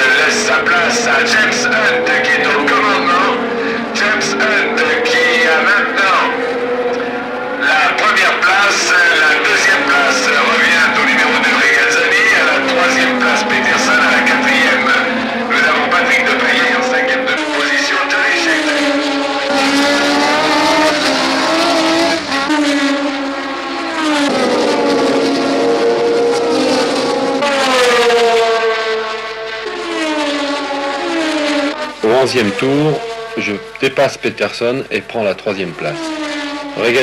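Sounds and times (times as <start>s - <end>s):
race car engines at high revs: 0.0s - 37.0s.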